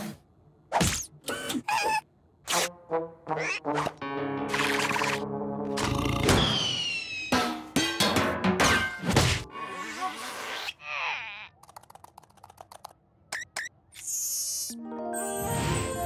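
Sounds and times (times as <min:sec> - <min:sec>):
orchestral score music: 0:02.7 - 0:05.9.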